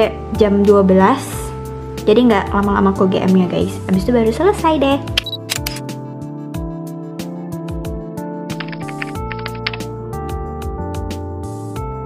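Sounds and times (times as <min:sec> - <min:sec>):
sharp percussion ticks: 0:08.5 - 0:09.9.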